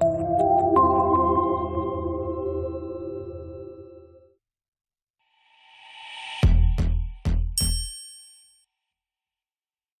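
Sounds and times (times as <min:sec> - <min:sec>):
bright metallic ring: 0:07.6 - 0:08.6.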